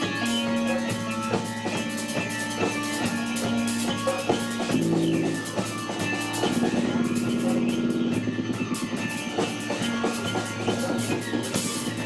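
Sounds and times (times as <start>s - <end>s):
band music with steady beat: 0.0s - 12.0s.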